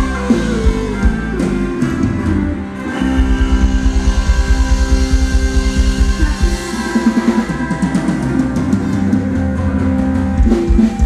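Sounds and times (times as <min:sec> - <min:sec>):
fast low drum pulses: 0:00.0 - 0:11.0
live dance band playing: 0:00.0 - 0:11.0.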